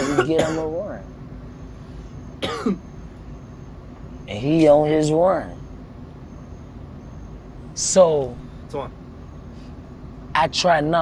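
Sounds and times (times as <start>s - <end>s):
man clearing throat: 0.0s - 0.8s, 2.4s - 2.8s
low steady background: 0.0s - 11.0s.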